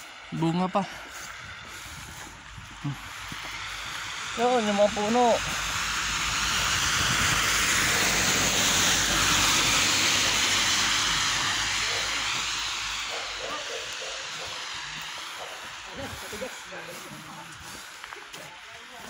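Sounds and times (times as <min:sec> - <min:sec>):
car tyres hissing on wet road: 0:00.0 - 0:19.0.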